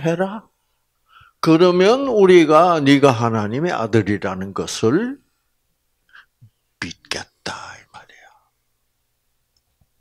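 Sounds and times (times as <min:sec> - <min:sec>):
faint click: 0:09.5 - 0:09.9.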